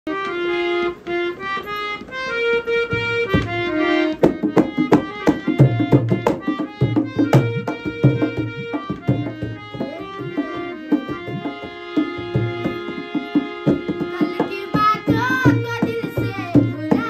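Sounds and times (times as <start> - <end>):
harmonium playing: 0.1 - 17.0
dholak drum beating: 1.9 - 17.0.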